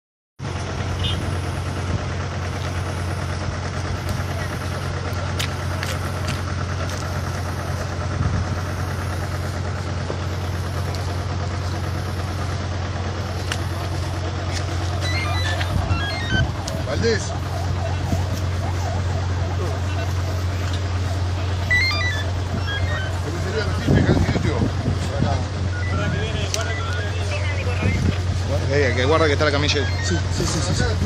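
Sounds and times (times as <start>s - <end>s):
vehicle engine idling: 0.4s - 31.0s
indistinct voices: 13.2s - 31.0s.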